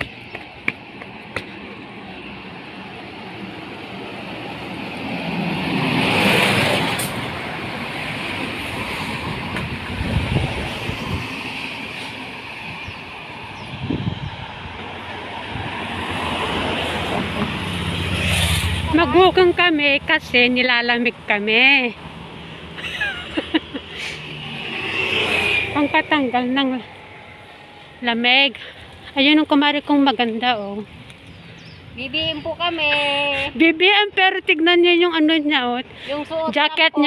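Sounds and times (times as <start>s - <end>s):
cars passing: 0.0s - 37.0s.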